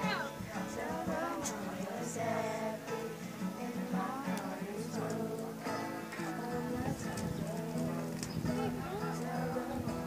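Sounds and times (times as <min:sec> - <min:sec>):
acoustic guitar: 0:00.0 - 0:10.0
voices: 0:00.0 - 0:10.0.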